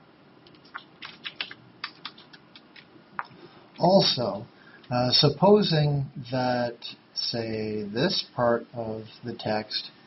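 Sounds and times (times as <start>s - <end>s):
computer keyboard keys tapping: 0.4s - 3.3s.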